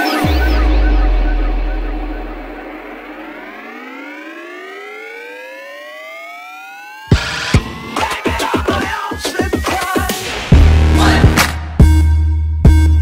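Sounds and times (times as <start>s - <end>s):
synth riser climbing in pitch: 0.0s - 8.3s
deep sub-bass boom: 0.2s - 3.8s.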